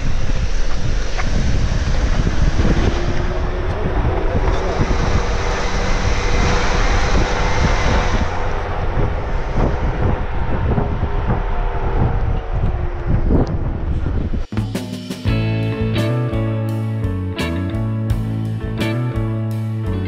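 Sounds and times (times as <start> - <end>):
vehicle engine drone: 0.0 - 14.5, 15.3 - 20.0
wind on microphone: 0.0 - 14.5
heavy rumble: 0.0 - 20.0.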